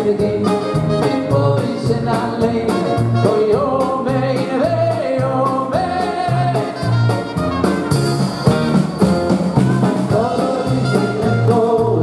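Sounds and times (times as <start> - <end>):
man singing into a microphone: 0.0 - 7.2, 9.8 - 12.0
bass notes: 0.0 - 12.0
steady drum beat: 0.0 - 12.0.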